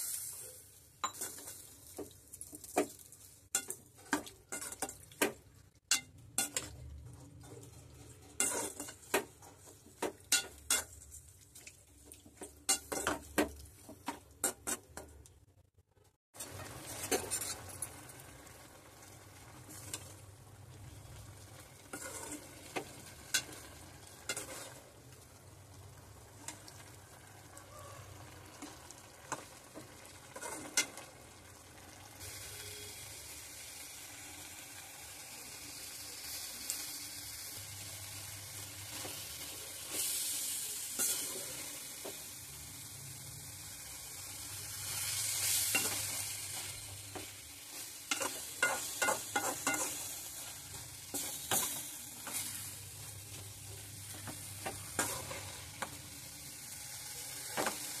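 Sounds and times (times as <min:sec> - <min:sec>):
gravy sizzling in a pan: 0:00.0 - 0:15.2, 0:16.3 - 0:58.0
spatula scraping and clicking on pan: 0:01.0 - 0:15.3, 0:16.4 - 0:17.9, 0:21.8 - 0:24.9, 0:28.6 - 0:31.1, 0:45.4 - 0:56.0.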